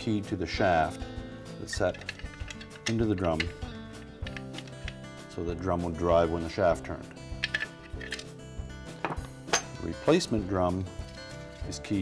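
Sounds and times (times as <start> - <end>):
background music with steady tones: 0.0 - 12.0
plastic parts knocking on workbench: 9.0 - 9.7.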